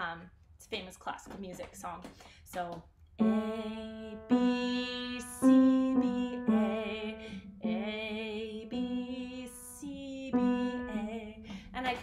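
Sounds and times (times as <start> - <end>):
woman singing slow melody: 3.2 - 12.0
singer breathing: 7.2 - 7.6, 11.4 - 11.8.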